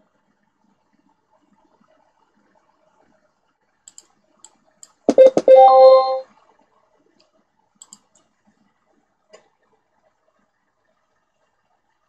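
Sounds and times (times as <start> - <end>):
computer mouse clicks: 3.9 - 5.3, 7.8 - 8.3.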